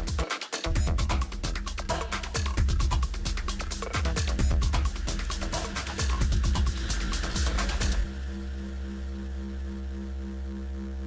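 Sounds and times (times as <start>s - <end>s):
low electronic drone: 0.0s - 11.0s.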